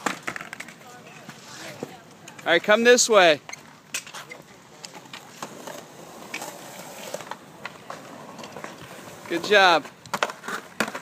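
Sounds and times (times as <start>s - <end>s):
small wheels rolling over concrete: 0.0s - 11.0s.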